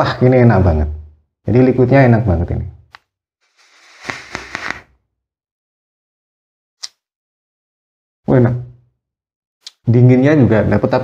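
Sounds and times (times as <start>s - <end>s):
air hissing through e-cigarette: 3.5s - 4.8s.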